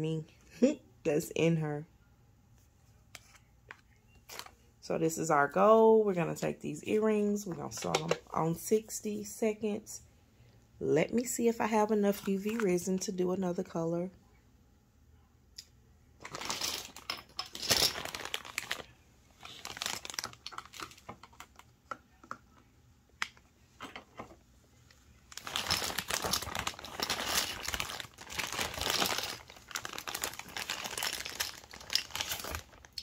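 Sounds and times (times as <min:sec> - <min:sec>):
plastic packaging crinkling: 0:16.2 - 0:21.7, 0:25.3 - 0:33.0.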